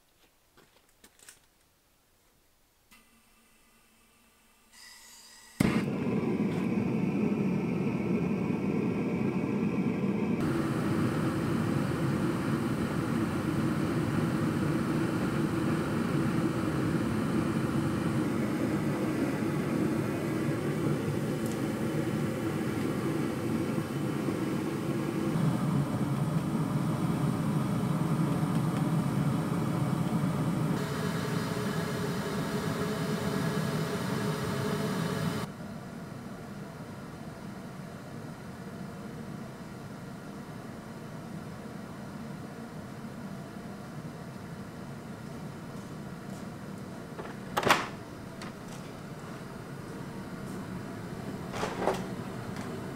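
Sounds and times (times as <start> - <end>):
gas burner igniting pop: 5.6 - 6.8
burner flame rushing: 5.6 - 35.5.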